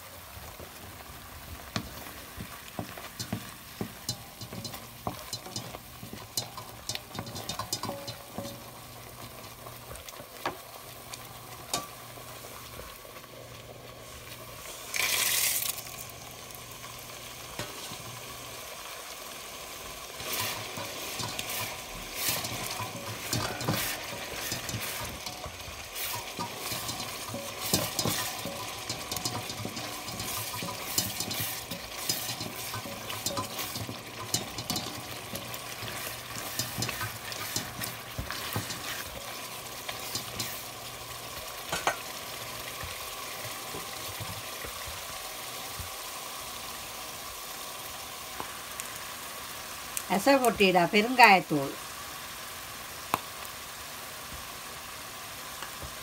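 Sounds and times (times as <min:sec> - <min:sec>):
loud sizzle in oil: 0:00.0 - 0:56.0
wooden spatula scraping a metal pan: 0:01.8 - 0:09.6, 0:20.2 - 0:40.7.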